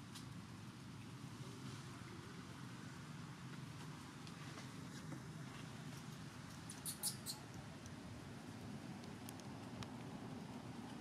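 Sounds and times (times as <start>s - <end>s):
low background rumble: 0.0s - 11.0s
high-pitched squeaks: 6.7s - 7.5s.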